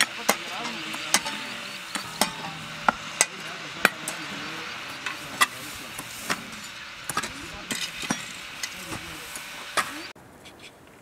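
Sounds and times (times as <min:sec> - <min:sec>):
clinks and knocks of building work: 0:00.0 - 0:10.0
steady background hiss: 0:00.0 - 0:11.0.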